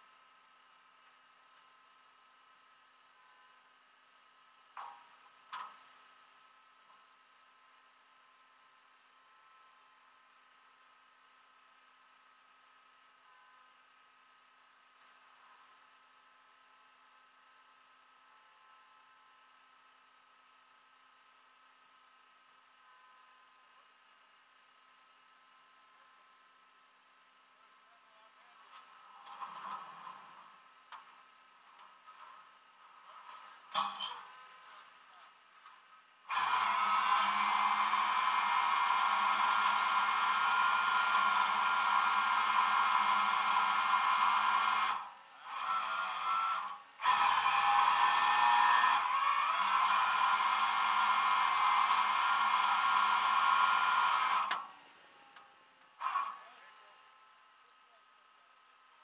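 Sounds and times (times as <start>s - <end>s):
hydraulic winch whine and hiss: 36.3s - 54.7s.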